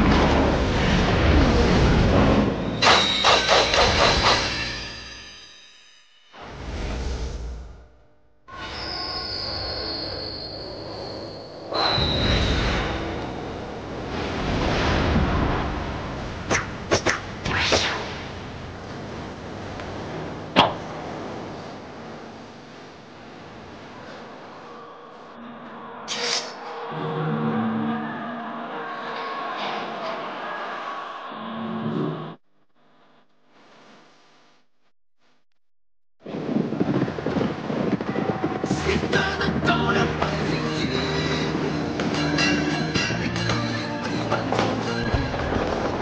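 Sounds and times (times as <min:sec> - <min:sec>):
loud rushing rumble: 0:00.0 - 0:04.4
whoosh and strike effect: 0:00.0 - 0:05.5, 0:16.5 - 0:18.4
sharp metallic percussive hits: 0:02.8 - 0:06.0.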